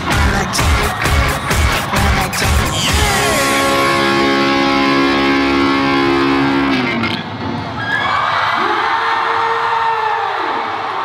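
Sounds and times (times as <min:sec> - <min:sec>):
loud dance music: 0:00.0 - 0:07.4
audience cheering with whoops: 0:07.7 - 0:11.0.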